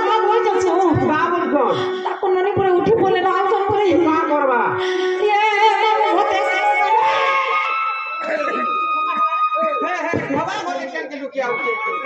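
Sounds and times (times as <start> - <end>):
person singing with vibrato: 4.7 - 9.7
held instrument note: 4.8 - 9.8.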